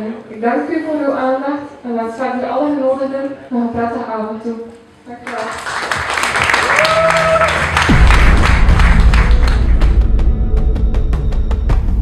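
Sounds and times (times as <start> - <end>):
audience applauding: 5.3 - 10.1
music with heavy deep beat: 7.8 - 12.0.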